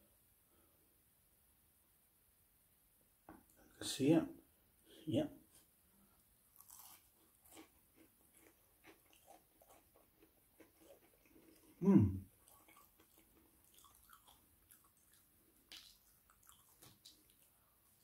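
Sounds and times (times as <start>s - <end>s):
chewing crunchy fried food: 6.5s - 18.0s
person humming: 11.8s - 12.2s
wet mouth clicks: 12.5s - 17.5s.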